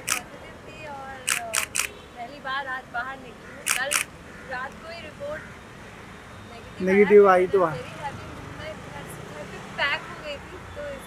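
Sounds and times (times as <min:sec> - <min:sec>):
camera shutter clicks: 0:00.0 - 0:00.2, 0:01.2 - 0:02.0, 0:03.6 - 0:04.1.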